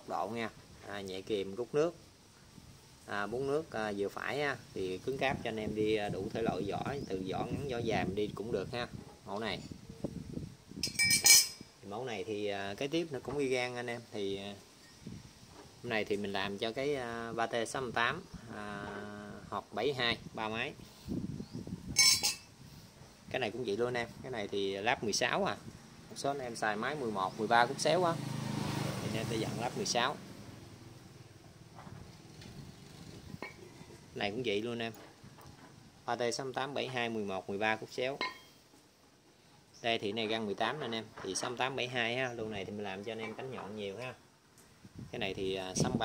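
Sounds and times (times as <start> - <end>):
metal propellers clinking: 10.8 - 11.7, 22.0 - 22.5.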